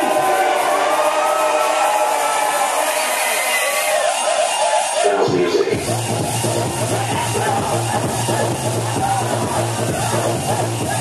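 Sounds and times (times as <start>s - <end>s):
crowd noise: 0.0s - 11.0s
electronic dance music: 0.0s - 11.0s.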